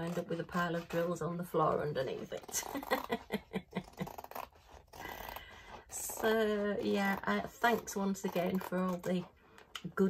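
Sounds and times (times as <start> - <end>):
scissors snipping canvas: 3.7 - 10.0.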